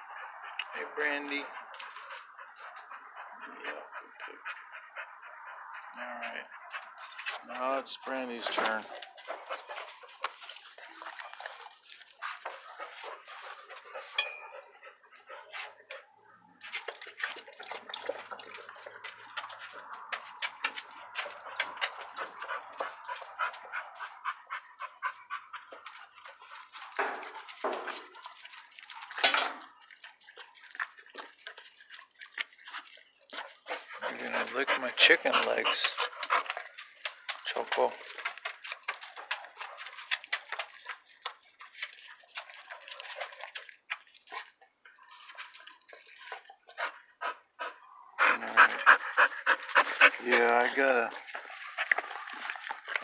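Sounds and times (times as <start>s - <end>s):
dogs panting and snuffling: 0.0s - 53.0s
dog licking: 0.1s - 53.0s.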